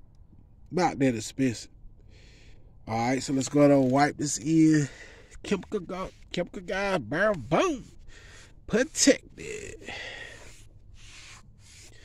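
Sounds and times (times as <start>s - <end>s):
foam pad rubbing on tire: 7.2s - 8.0s, 8.7s - 9.2s, 10.1s - 12.0s.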